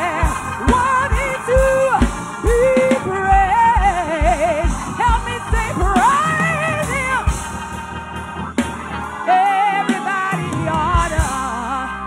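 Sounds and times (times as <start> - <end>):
woman singing gospel: 0.0 - 8.0, 8.6 - 12.0
accompaniment with low beat: 0.0 - 12.0.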